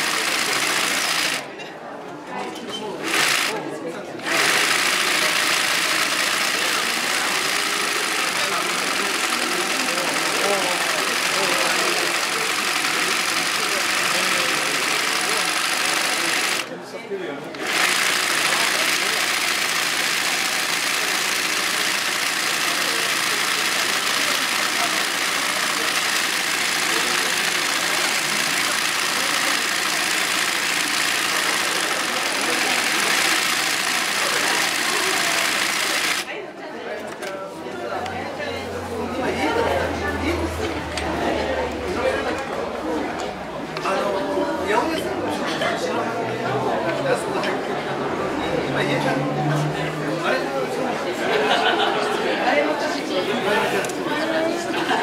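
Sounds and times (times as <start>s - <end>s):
sewing machine running: 0.0s - 1.5s, 3.0s - 3.6s, 4.2s - 16.7s, 17.5s - 36.4s.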